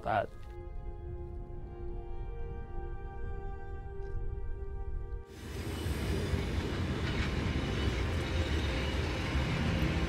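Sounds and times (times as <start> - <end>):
train wagons rumbling and rattling: 5.4 - 10.0.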